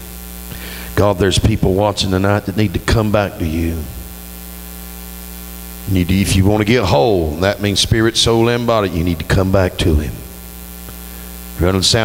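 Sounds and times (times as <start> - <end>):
electrical mains hum: 0.0 - 12.0
microphone hiss: 0.0 - 12.0.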